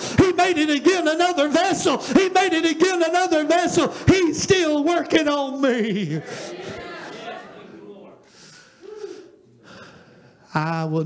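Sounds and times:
man breathing in sharply: 8.3s - 10.4s.

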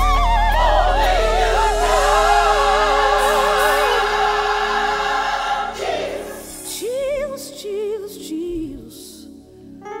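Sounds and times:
choir holding a chord: 0.5s - 7.3s.

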